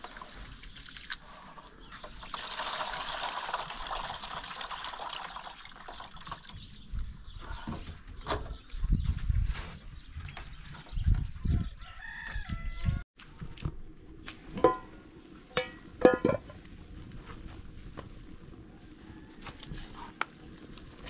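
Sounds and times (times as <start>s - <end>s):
water pouring into plastic basin: 2.2s - 6.5s
wind buffeting microphone: 6.6s - 13.0s
rooster crowing: 11.5s - 13.0s.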